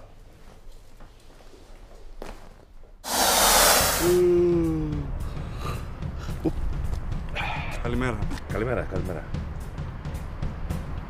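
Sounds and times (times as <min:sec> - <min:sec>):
man yawning: 0:04.0 - 0:05.2.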